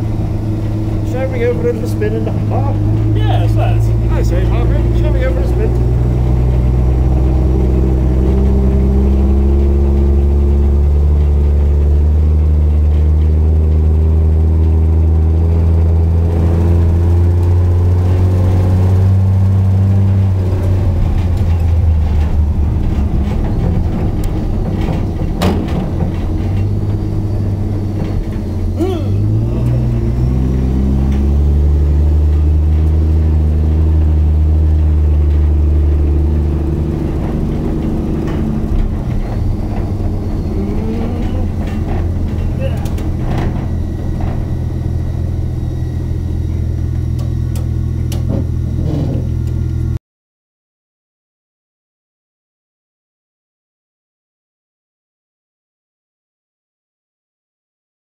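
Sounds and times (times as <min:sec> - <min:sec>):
truck engine driving on grass: 0:00.0 - 0:50.0.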